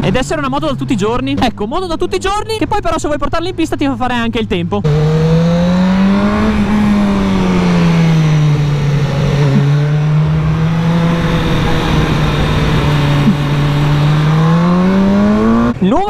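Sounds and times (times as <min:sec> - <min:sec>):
motorcycle engine: 0:04.6 - 0:15.9
wind rush: 0:05.9 - 0:15.6.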